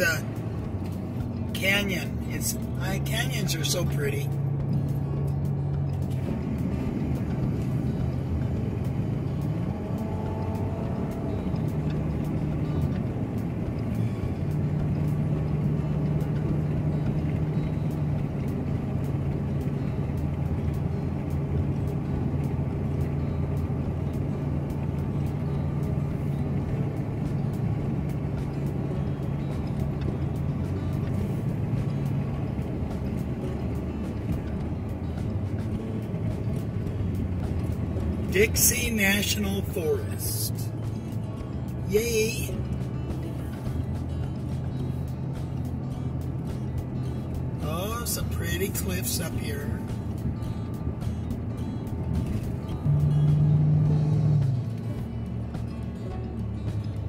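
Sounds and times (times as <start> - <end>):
car engine and tyre drone: 0.0 - 57.0.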